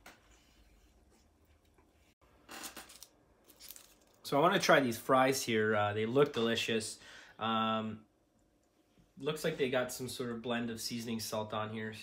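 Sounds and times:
paper wrapping rustling: 2.6 - 4.2.

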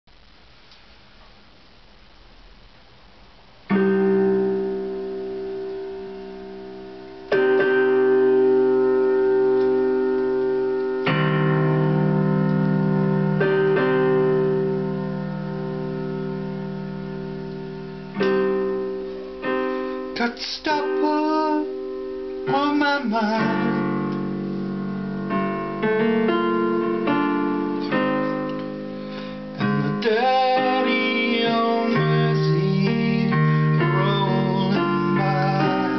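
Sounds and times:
electronic keyboard piano chords: 3.6 - 35.9.

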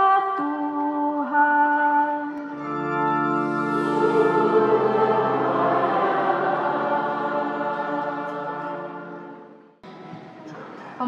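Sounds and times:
church choir singing: 2.6 - 9.9.

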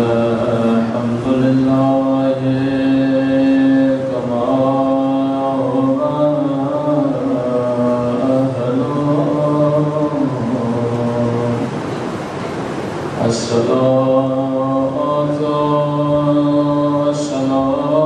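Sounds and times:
man chanting: 0.0 - 11.7, 13.2 - 18.0.

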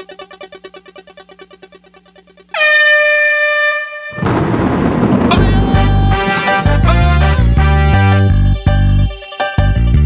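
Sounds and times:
rapidly pulsing synth tone: 0.0 - 2.5
air horn sound effect: 2.5 - 9.1
reggae backing track: 5.3 - 10.0.

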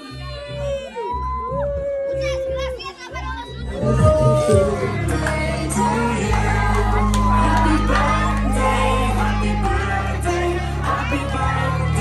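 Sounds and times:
children's voices in crowd: 0.0 - 1.4, 2.1 - 12.0
music with repeating bass beat: 3.7 - 12.0.

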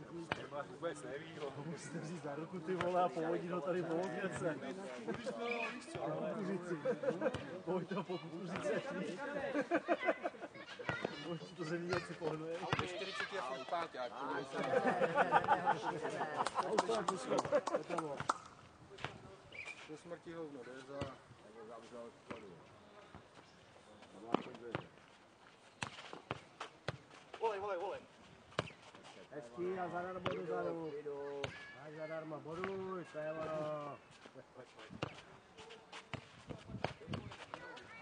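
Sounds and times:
footsteps on clay court: 2.6 - 9.2, 10.7 - 13.7, 20.7 - 30.5, 32.5 - 38.0
ball kicked and bouncing: 11.9 - 13.3, 28.5 - 28.8.

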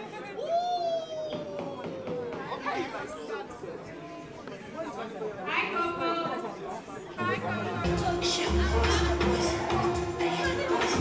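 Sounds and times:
crowd chatter: 0.0 - 11.0
music with steady bass: 7.8 - 11.0.

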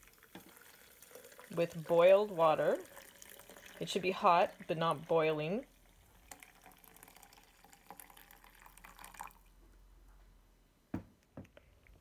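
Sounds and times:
water trickling and splashing: 0.0 - 9.5.

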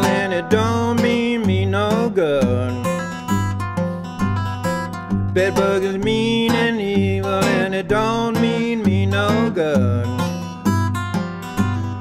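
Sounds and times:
fingerstyle blues acoustic guitar: 0.0 - 12.0.

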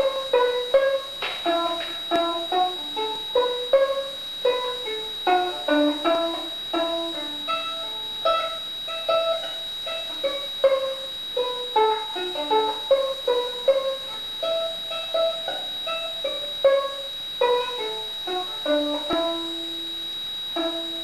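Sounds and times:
fiddle plucked pizzicato: 0.0 - 19.9, 20.6 - 21.0.

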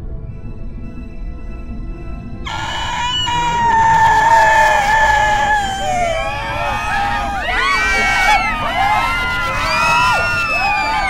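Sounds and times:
long high scream: 2.5 - 11.0.

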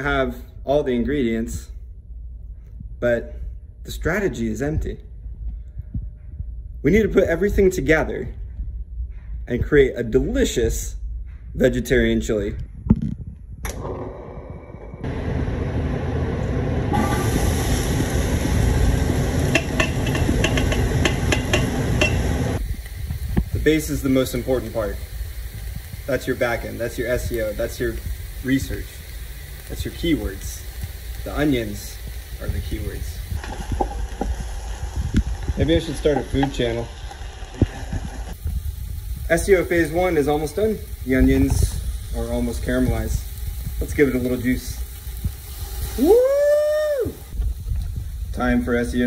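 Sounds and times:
low steady rumble: 0.0 - 49.0
vegetables sizzling in a pot: 16.9 - 49.0
wooden spoon knocking pot: 19.5 - 22.3
sharp crackles: 22.6 - 49.0.

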